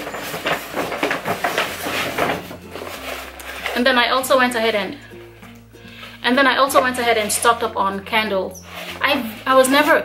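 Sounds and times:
rustling and light knocking: 0.0 - 3.7.

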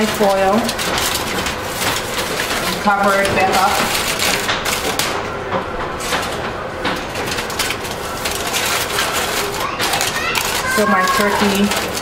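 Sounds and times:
aluminium foil crinkling: 0.0 - 5.2, 6.0 - 12.0.

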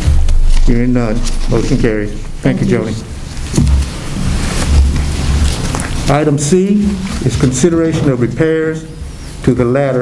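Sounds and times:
rumbling microphone handling noise: 0.0 - 9.2.

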